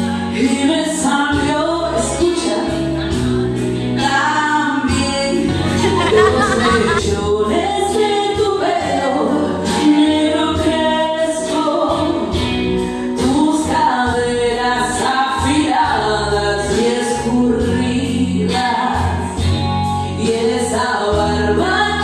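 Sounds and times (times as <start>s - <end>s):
recorded backing track: 0.0s - 22.0s
woman singing karaoke: 0.0s - 22.0s.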